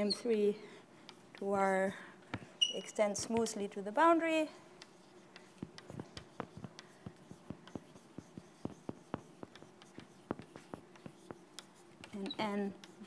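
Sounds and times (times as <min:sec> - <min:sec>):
chalk tapping and scratching: 0:01.0 - 0:01.7, 0:02.3 - 0:03.7, 0:04.7 - 0:13.0.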